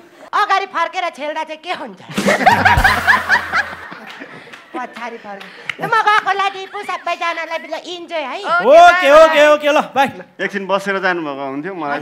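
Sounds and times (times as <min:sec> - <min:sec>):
person laughing loudly: 0:02.1 - 0:04.3.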